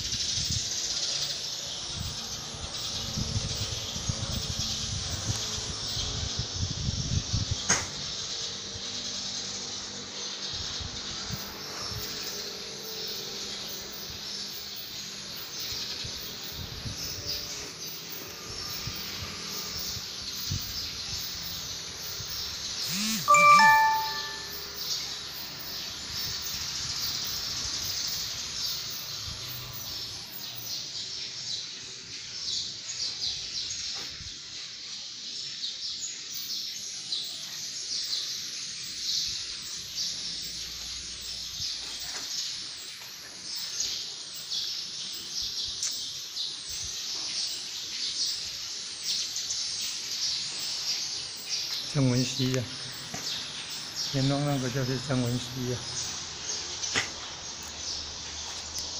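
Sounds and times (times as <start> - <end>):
small birds chirping: 0.0 - 58.9
bell-like ding: 23.0 - 24.7.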